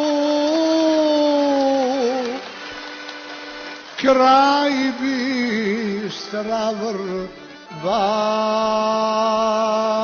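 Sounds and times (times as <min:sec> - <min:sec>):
man singing with vibrato: 0:00.0 - 0:02.5, 0:04.0 - 0:10.0
instrumental accompaniment: 0:00.0 - 0:10.0.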